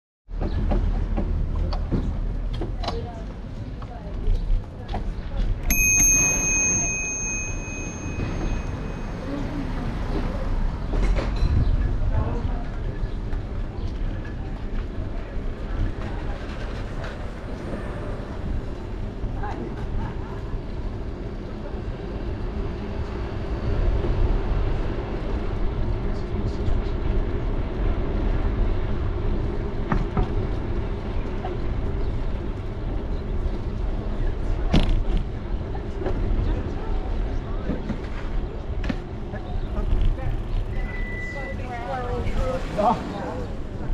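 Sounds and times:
short high-pitched ring: 0:05.7 - 0:09.4
bicycle tyres rolling on asphalt: 0:37.8 - 0:43.8.

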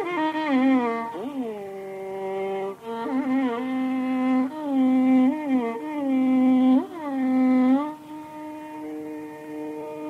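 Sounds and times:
violin playing slow melody: 0:00.0 - 0:10.0.

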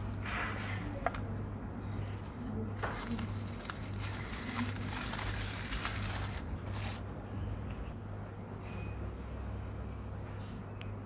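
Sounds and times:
tissue paper crinkling: 0:02.0 - 0:07.8.

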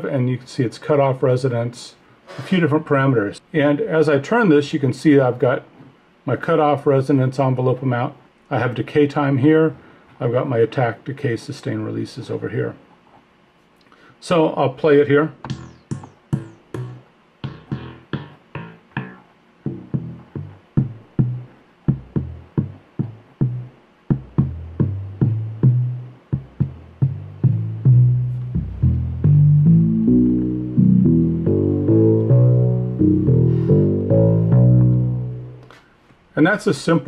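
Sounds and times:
synthesizer bass-line sequence: 0:15.4 - 0:35.7.

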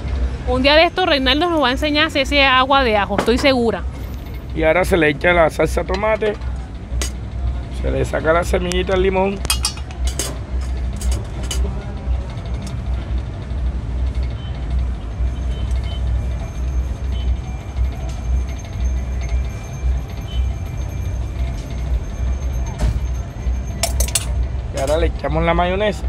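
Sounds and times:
street noise rumble: 0:00.0 - 0:26.0
jars and utensils clinking: 0:09.4 - 0:11.7, 0:23.8 - 0:25.0.

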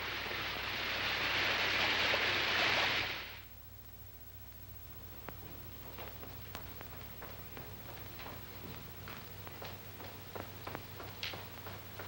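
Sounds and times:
loud rushing hiss: 0:00.0 - 0:03.5
faint low hum: 0:00.0 - 0:12.0.

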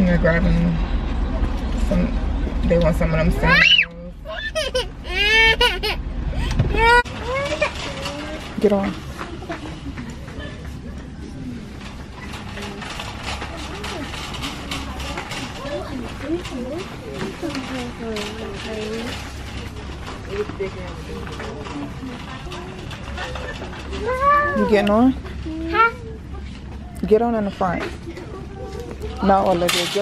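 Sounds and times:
metal shopping cart rattling: 0:06.8 - 0:09.9, 0:11.6 - 0:26.0, 0:29.1 - 0:30.0.

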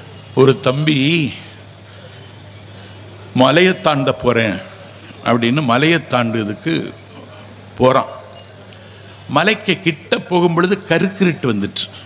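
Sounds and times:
steady low background hum: 0:00.0 - 0:12.0
man speaking: 0:00.4 - 0:01.6, 0:03.3 - 0:08.4, 0:09.3 - 0:12.0.

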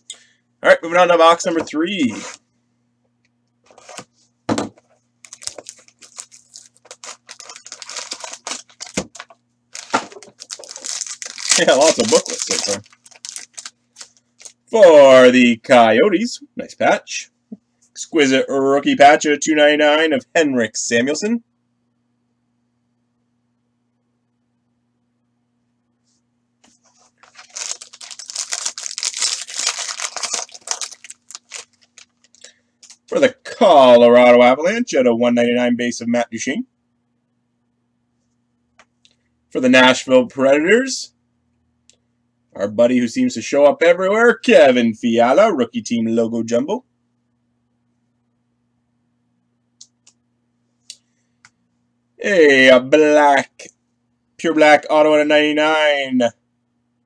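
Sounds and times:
knocks on cardboard box: 0:04.5 - 0:04.8
plastic and foil wrapping crackling: 0:05.2 - 0:14.6, 0:26.9 - 0:33.2.

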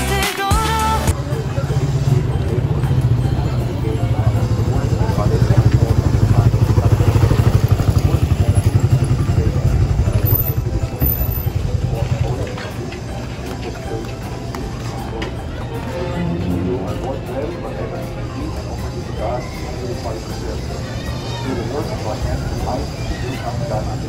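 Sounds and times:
small motorcycle engine passing: 0:01.2 - 0:12.4.

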